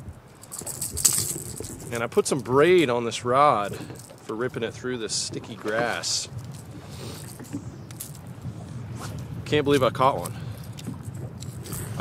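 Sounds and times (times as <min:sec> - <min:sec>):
fishing lure rattles jingling: 0:00.4 - 0:02.6, 0:05.9 - 0:08.3.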